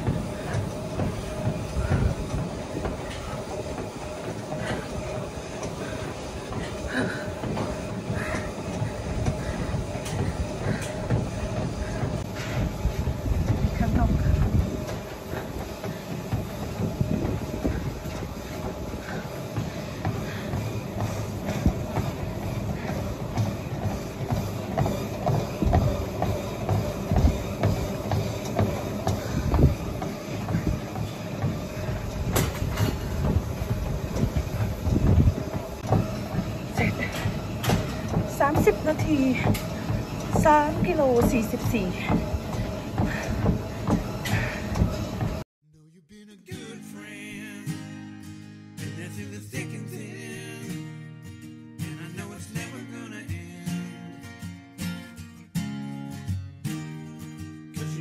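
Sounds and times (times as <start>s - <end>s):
footfalls on treadmill belt: 0.0s - 45.4s
treadmill motor hum: 0.0s - 45.5s.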